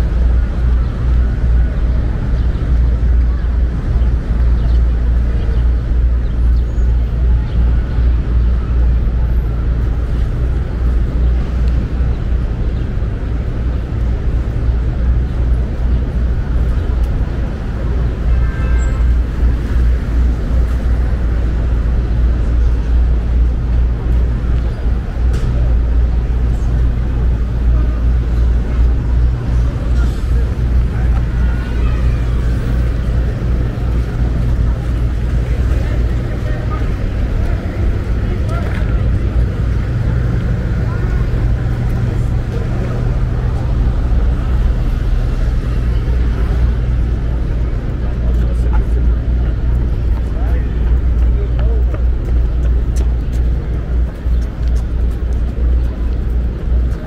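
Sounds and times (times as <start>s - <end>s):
cars passing: 0.0s - 57.0s
low traffic rumble: 0.0s - 57.0s
voices of passers-by: 0.0s - 57.0s.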